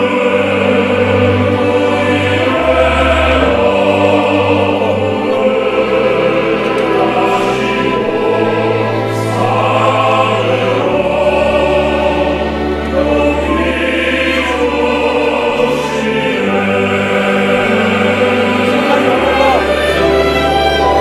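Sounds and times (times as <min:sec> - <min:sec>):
male choir singing: 0:00.0 - 0:21.0
string ensemble: 0:00.0 - 0:21.0.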